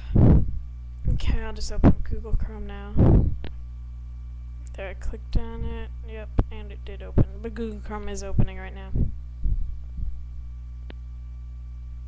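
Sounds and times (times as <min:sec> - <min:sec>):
dull low thumps: 0:00.0 - 0:03.8, 0:05.1 - 0:07.5, 0:08.2 - 0:11.8
low hum: 0:00.0 - 0:12.0.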